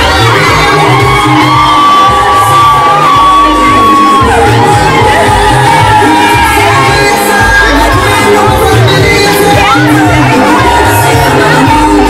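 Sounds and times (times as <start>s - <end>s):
crowd cheering and shouting: 0.0s - 12.0s
loud dance music: 0.0s - 12.0s.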